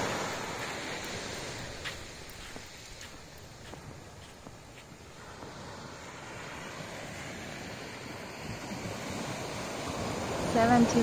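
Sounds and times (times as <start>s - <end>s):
small waves washing onto shore: 0.0s - 11.0s.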